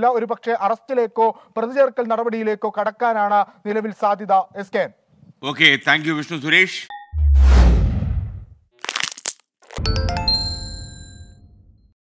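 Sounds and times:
deep hit: 7.2 - 8.5
low whoosh: 7.2 - 8.5
bell-like chimes: 9.8 - 11.7.

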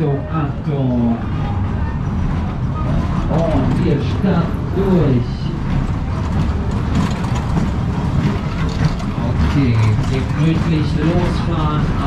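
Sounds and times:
fairground ride rumbling: 0.0 - 12.0.

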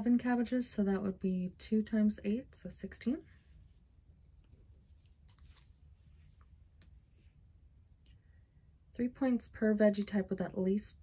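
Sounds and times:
woman's voice: 0.0 - 3.3, 9.0 - 11.0
faint low hum: 0.0 - 11.0.

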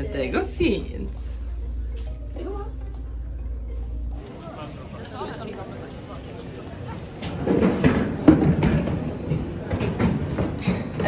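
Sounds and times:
young people chattering: 0.0 - 11.0.

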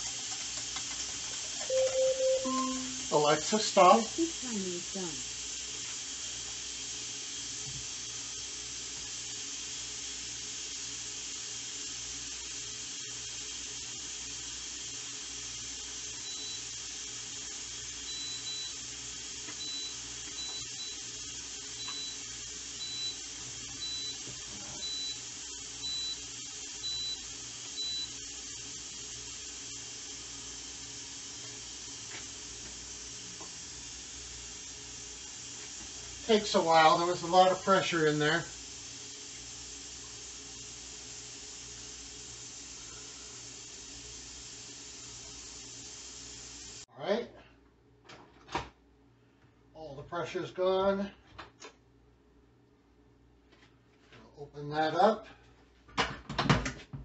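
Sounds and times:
steam vent hissing: 0.0 - 46.9
short high beeps: 1.7 - 3.2.

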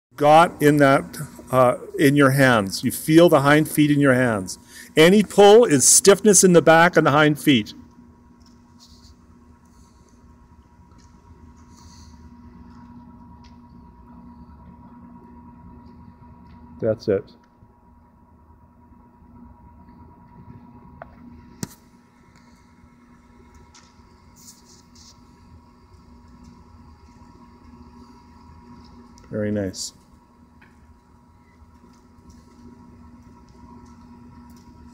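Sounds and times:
electrical hum: 0.1 - 34.9.

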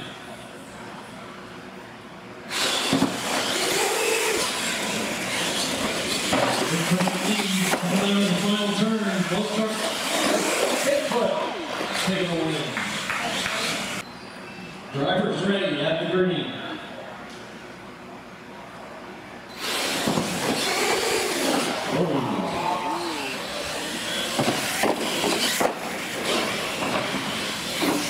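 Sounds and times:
radio-controlled trucks motor and tyre noise: 2.5 - 14.1, 19.5 - 28.0
man calling out: 21.9 - 23.6.

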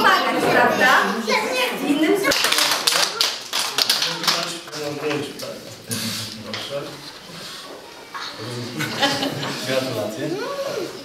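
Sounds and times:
small group clapping: 2.1 - 5.6.

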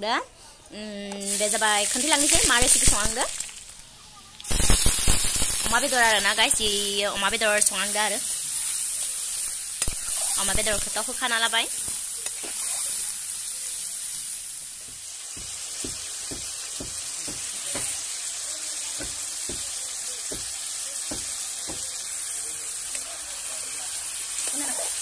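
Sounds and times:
meat sizzling in hot fat: 1.2 - 25.0.

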